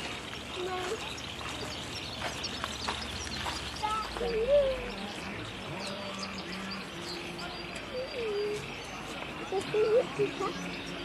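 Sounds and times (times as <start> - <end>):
murmur of distant voices: 0.0 - 11.0
small birds chirping: 0.0 - 11.0.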